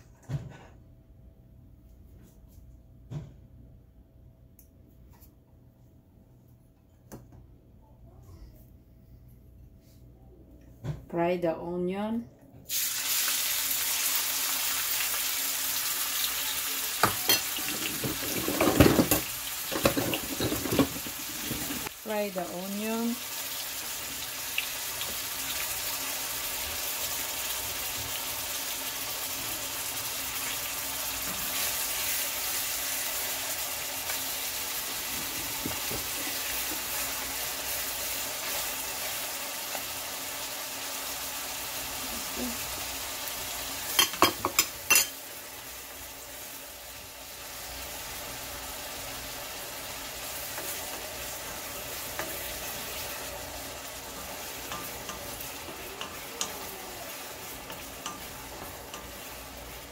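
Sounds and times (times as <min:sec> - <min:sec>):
onion sizzling in oil: 0:12.7 - 0:59.9
wooden spoon stirring: 0:50.5 - 0:59.9.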